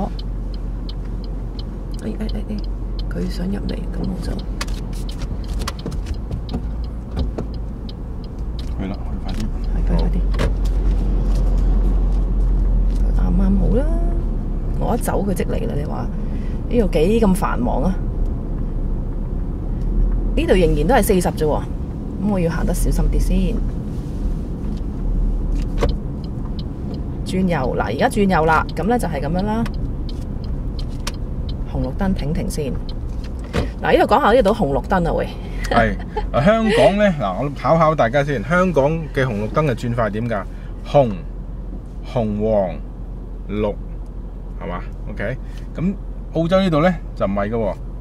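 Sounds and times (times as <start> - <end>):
engine and road rumble: 0.0 - 48.0.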